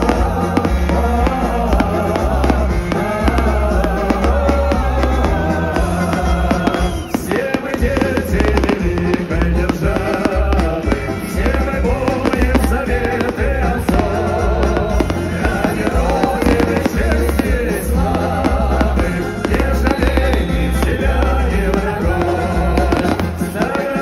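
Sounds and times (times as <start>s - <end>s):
fireworks bangs and crackles: 0.0s - 24.0s
loud music with heavy bass beat: 0.0s - 24.0s.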